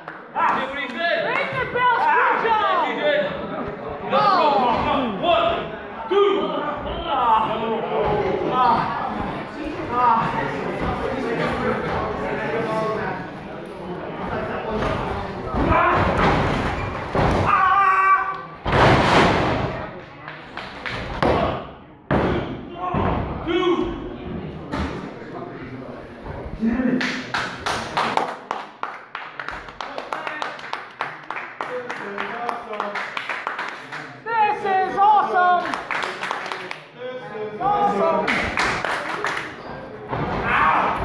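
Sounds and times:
crowd clapping rhythmically: 0.0s - 1.4s, 27.0s - 34.2s, 35.6s - 36.9s, 38.3s - 39.6s.

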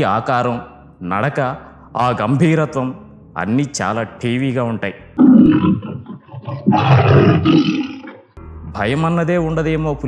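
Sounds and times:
tiger roaring: 5.2s - 8.3s.

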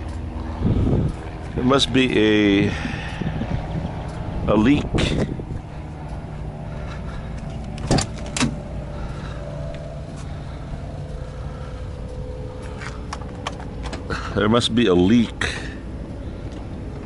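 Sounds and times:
diesel truck engine idling: 0.0s - 17.0s.

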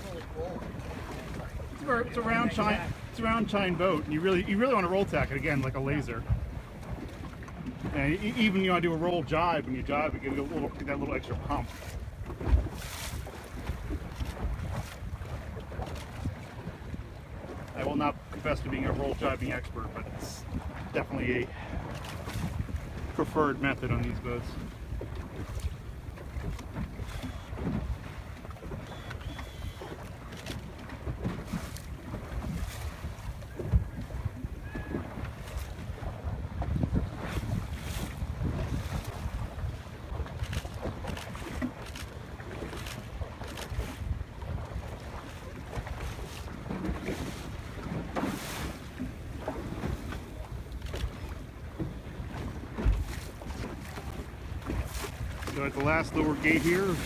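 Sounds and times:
water slapping against hull: 0.0s - 57.0s
wind noise on microphone: 11.3s - 17.7s, 20.0s - 57.0s.

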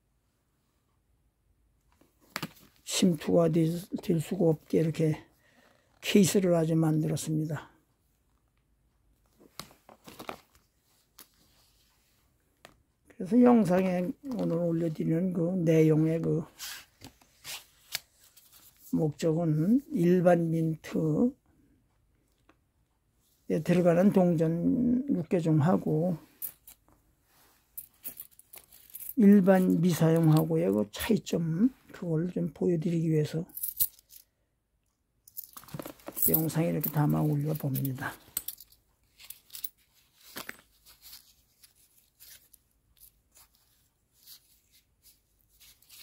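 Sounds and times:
card sleeve rustling: 9.5s - 11.9s, 35.6s - 46.0s.

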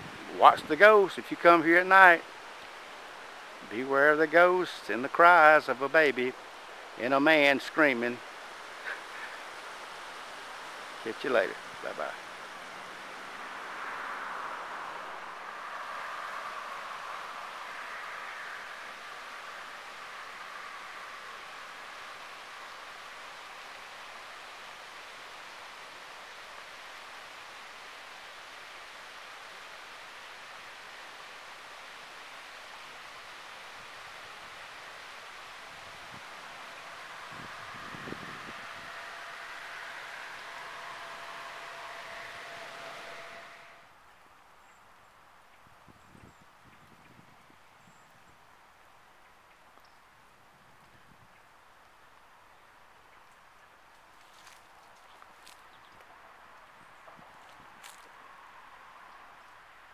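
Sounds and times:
steady outdoor rushing hiss: 0.0s - 59.9s.

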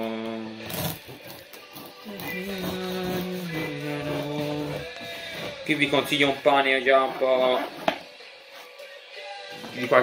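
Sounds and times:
man singing slow tune: 0.0s - 10.0s.

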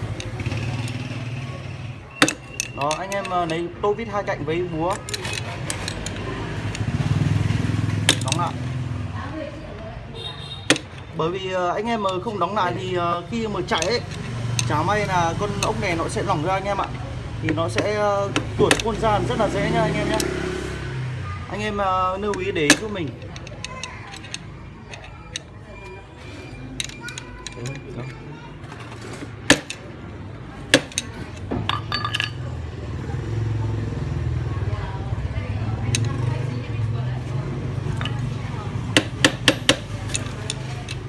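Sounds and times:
screwdriver tapping on metal: 22.3s - 25.5s, 30.7s - 32.4s, 38.9s - 41.0s.

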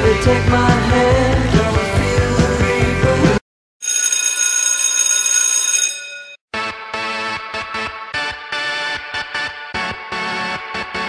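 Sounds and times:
rock music: 0.0s - 3.4s
bell ringing: 3.8s - 6.4s.

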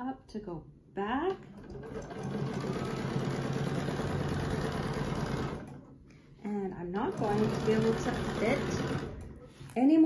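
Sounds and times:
sewing machine running: 1.5s - 5.9s, 7.0s - 9.5s.

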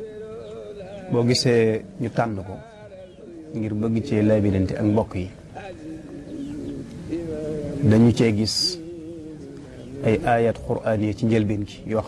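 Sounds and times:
dove cooing: 3.0s - 8.1s.

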